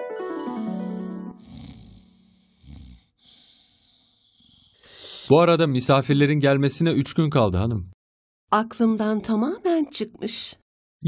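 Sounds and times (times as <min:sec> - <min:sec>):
old man snoring: 0:01.4 - 0:05.4.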